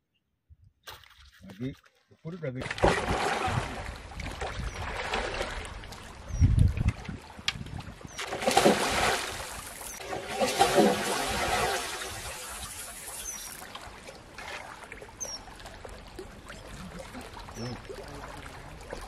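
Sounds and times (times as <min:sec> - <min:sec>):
fish splashing in water: 0:02.6 - 0:06.3, 0:08.1 - 0:19.0.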